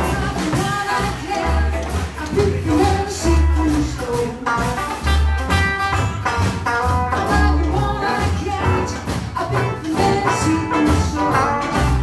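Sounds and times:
woman singing: 0:00.0 - 0:04.8, 0:07.0 - 0:12.0
drum kit with cymbals: 0:00.0 - 0:12.0
electric guitar: 0:00.0 - 0:12.0
low bass notes: 0:00.0 - 0:12.0.

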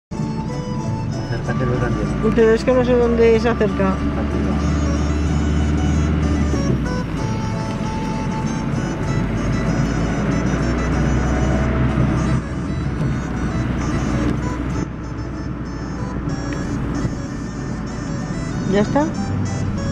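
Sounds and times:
car engine and road drone: 0:00.1 - 0:19.9.

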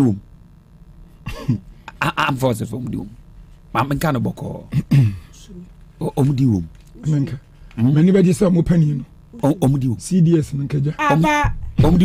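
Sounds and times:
person coughing: 0:01.2 - 0:01.6, 0:04.7 - 0:05.4
person speaking: 0:01.9 - 0:12.0.

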